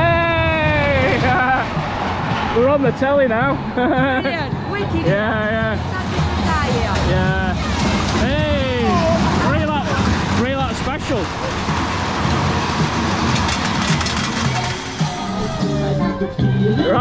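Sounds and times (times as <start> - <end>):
roller coaster train rumbling: 0.0 - 17.0
fairground music: 3.4 - 17.0.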